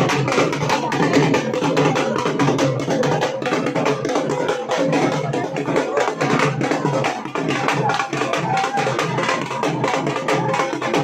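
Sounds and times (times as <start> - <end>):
procession drums beating fast: 0.0 - 11.0.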